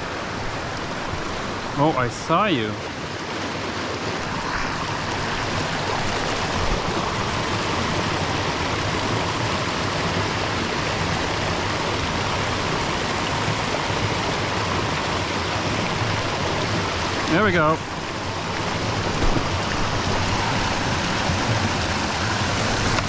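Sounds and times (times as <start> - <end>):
brook cascade rushing over rocks: 0.0 - 23.0.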